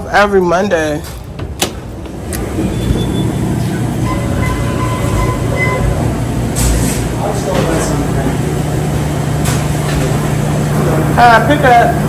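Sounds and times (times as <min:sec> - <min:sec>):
low machine hum: 0:00.0 - 0:12.0
faint held tones: 0:02.8 - 0:06.2.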